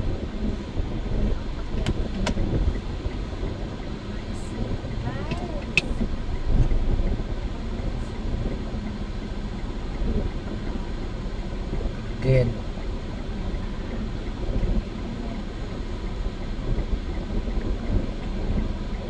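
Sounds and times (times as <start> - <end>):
passing road traffic: 0.0 - 19.0
vehicle engine idling: 0.0 - 19.0.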